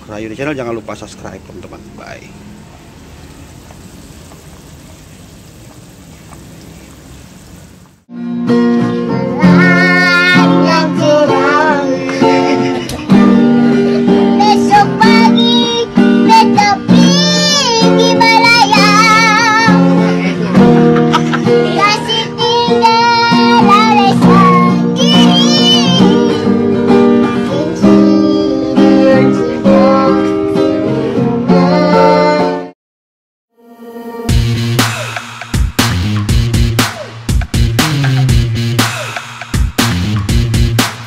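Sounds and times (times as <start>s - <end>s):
water boiling and bubbling: 0.4s - 8.1s
girl singing: 8.8s - 20.0s, 21.4s - 32.7s
instrumental accompaniment: 33.6s - 41.0s.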